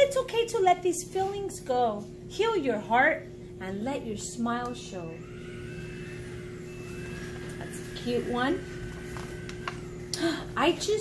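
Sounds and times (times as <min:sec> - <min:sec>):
low machine hum: 0:00.0 - 0:11.0
thin high whining tones: 0:04.5 - 0:11.0.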